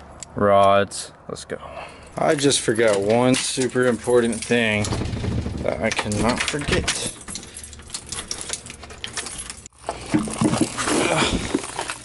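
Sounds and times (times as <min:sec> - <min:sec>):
key turning in lock: 0:02.8 - 0:09.7
keys jangling: 0:06.0 - 0:09.7
plastic boxes clattering: 0:08.4 - 0:12.0.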